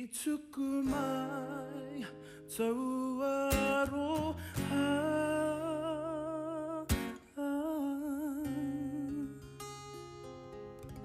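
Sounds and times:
man singing with vibrato: 0:00.0 - 0:09.8
acoustic guitar: 0:00.0 - 0:11.0.

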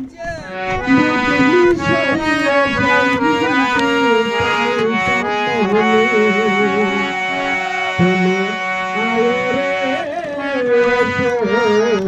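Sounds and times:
harmonium melody: 0:00.0 - 0:12.0
person singing devotional song: 0:00.0 - 0:12.0.

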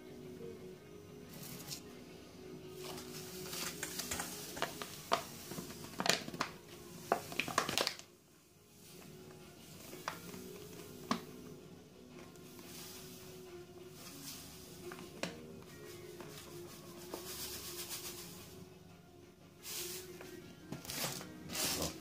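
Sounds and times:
faint background music: 0:00.0 - 0:22.0
sugar pouring into metal bowl: 0:02.8 - 0:08.0, 0:12.4 - 0:15.1, 0:15.8 - 0:18.6, 0:20.9 - 0:22.0
bag crinkling and rustling: 0:02.8 - 0:08.1, 0:20.8 - 0:22.0.

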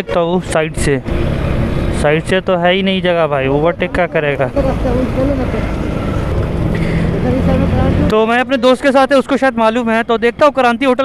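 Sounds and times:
vehicle engines and road noise: 0:00.0 - 0:11.0.

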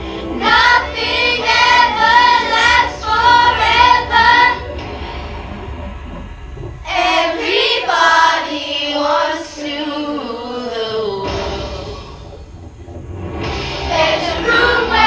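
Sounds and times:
child singing: 0:14.0 - 0:15.0.

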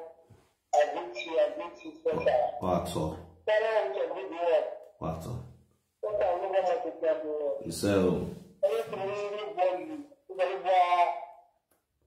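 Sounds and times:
person speaking: 0:00.8 - 0:11.4.

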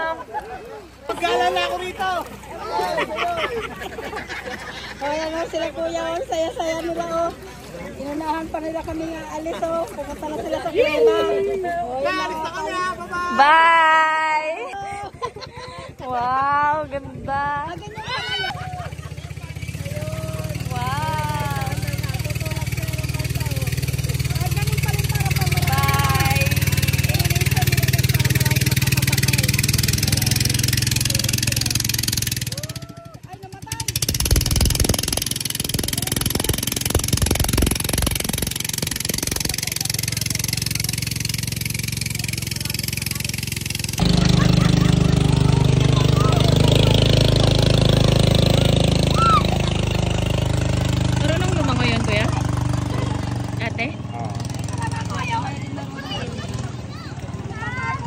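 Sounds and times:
people shouting and calling: 0:00.0 - 0:15.3, 0:17.6 - 0:58.0
small boat engine running: 0:00.0 - 0:58.0.

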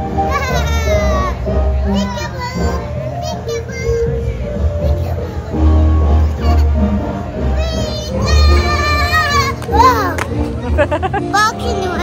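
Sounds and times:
steady music: 0:06.8 - 0:12.0.

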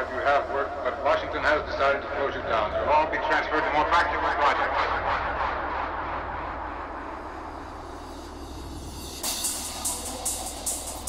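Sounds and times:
noise sweep: 0:00.0 - 0:11.0
steady low bass: 0:00.0 - 0:11.0
crisp percussion beat: 0:08.2 - 0:11.0.

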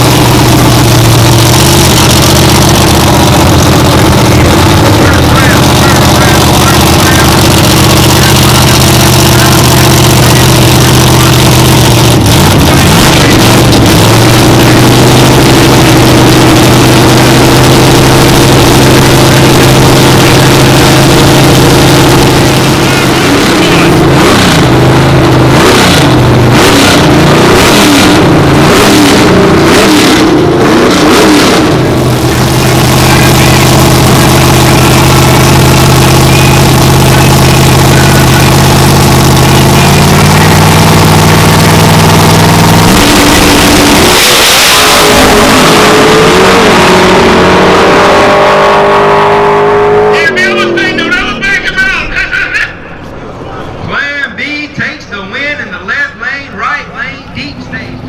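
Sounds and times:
cars launching at full throttle: 0:00.0 - 0:55.0
engines revving: 0:00.0 - 0:58.0
race car engines idling: 0:00.0 - 0:58.0.

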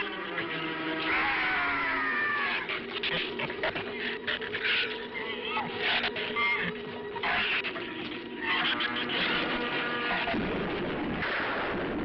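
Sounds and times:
animal squealing and snarling: 0:01.0 - 0:09.2.

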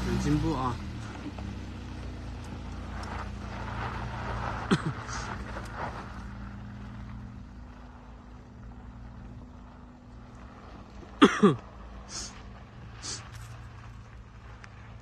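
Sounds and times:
car engine driving on dirt: 0:00.0 - 0:15.0.

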